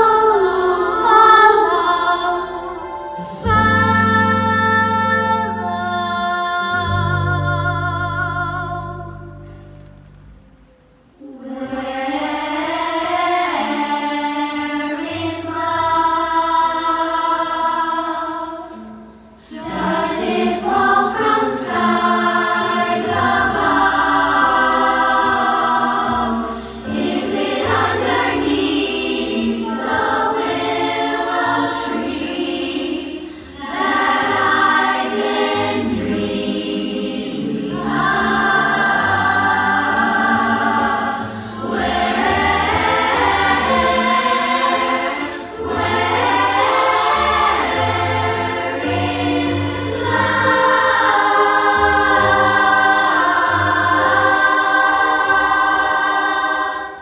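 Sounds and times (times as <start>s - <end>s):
children's choir singing: 0.0s - 9.6s, 11.0s - 57.0s
instrumental backing with bass: 0.0s - 11.2s.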